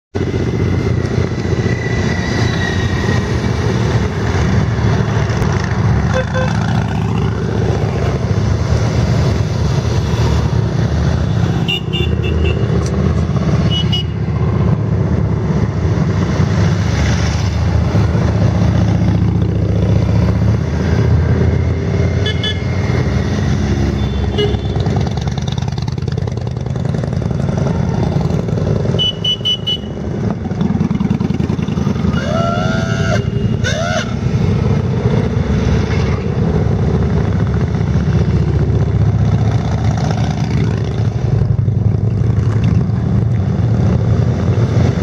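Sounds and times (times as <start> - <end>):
motorcycles riding past: 0.2 - 45.0.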